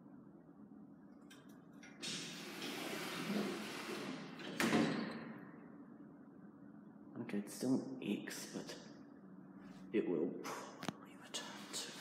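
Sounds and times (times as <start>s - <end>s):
lift doors sliding closed: 1.8s - 5.5s
doors meeting with thud: 2.0s - 5.4s.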